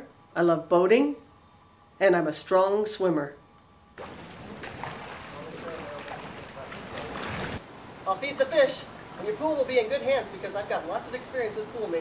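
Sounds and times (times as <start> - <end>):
water splashing from swimming strokes: 4.0 - 7.6.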